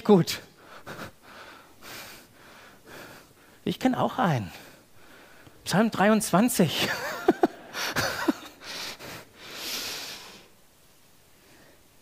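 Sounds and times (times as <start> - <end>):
man laughing quietly: 6.8 - 8.8.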